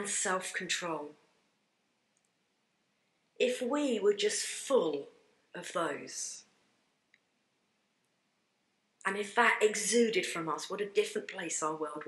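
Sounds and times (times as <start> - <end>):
faint click: 7.1 - 7.3.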